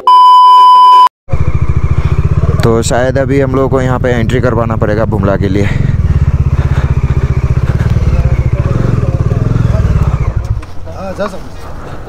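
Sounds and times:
test-tone beep: 0.0 - 1.1
motorcycle engine running: 1.3 - 11.5.

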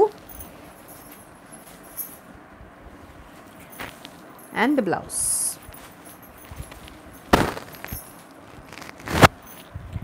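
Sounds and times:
woman speaking: 0.0 - 0.2, 4.5 - 5.7
cloth rustling: 0.0 - 9.7.

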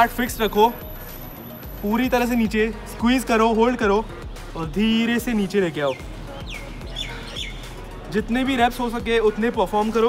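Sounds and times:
birds chirping: 0.0 - 10.0
quiet background music: 0.0 - 10.0.

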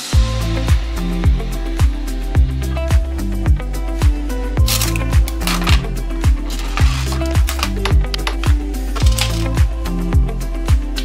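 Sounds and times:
electronic music with kick drum: 0.0 - 11.0.

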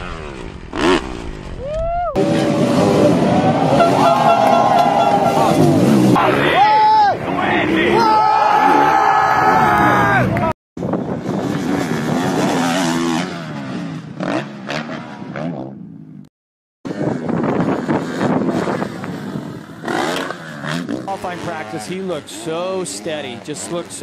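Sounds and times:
spectators shouting: 1.6 - 10.5
motocross bike engines revving: 2.2 - 16.0, 16.9 - 24.0.

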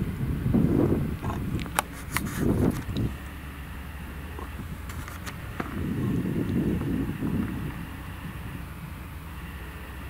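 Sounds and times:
harvester engine drone: 0.0 - 10.0
harvester machinery rumble: 0.0 - 10.0.

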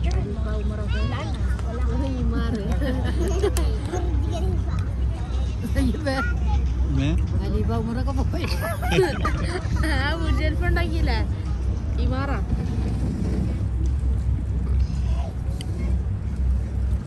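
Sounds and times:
people's voices: 0.0 - 16.6
boat engine rumble: 0.0 - 17.0.

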